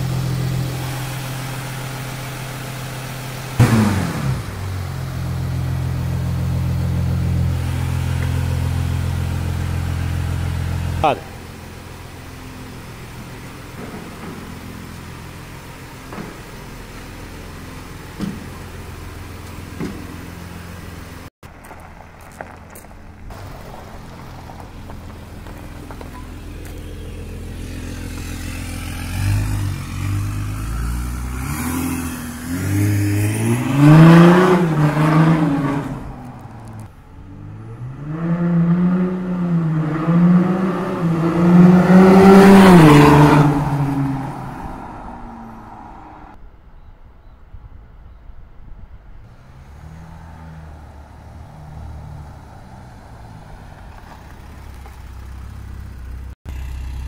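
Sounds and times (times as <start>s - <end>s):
diesel engine idling: 0.0s - 29.6s, 52.4s - 57.0s.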